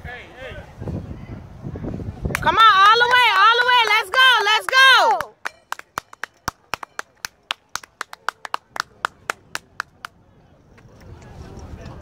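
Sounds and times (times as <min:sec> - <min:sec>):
hand clapping: 0:02.3 - 0:10.2.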